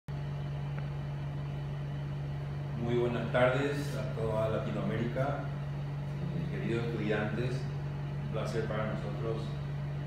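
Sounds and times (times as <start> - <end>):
steady low hum: 0.1 - 10.0.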